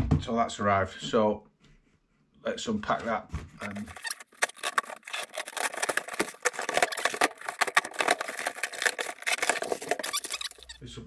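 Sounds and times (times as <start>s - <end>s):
plastic and cardboard rustling: 3.4s - 10.8s
knife cutting plastic wrap: 3.6s - 10.8s.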